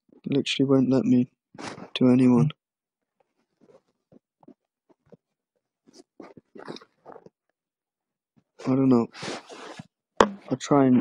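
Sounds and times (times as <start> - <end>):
smartphone handling taps: 10.2 - 10.5.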